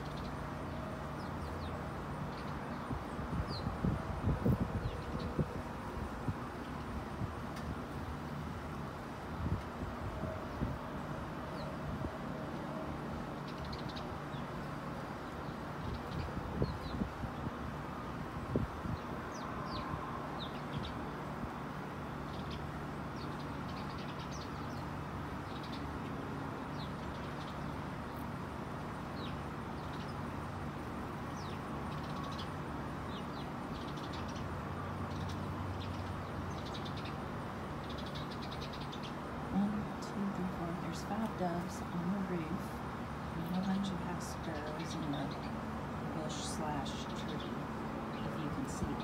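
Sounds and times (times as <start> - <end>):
sparrows chirping: 0.0 - 49.0.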